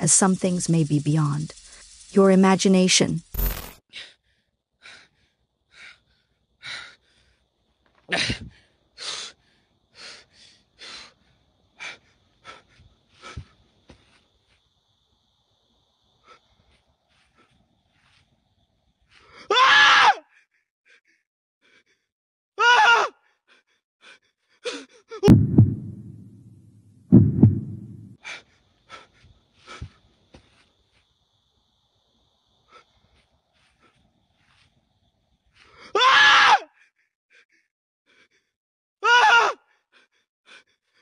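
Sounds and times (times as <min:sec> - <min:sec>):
loud pitched cries: 0:36.0 - 0:36.6.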